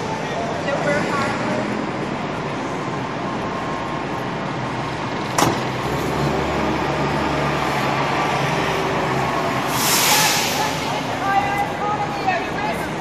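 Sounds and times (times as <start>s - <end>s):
city street traffic: 0.0s - 13.0s
vehicle engine humming nearby: 0.0s - 13.0s.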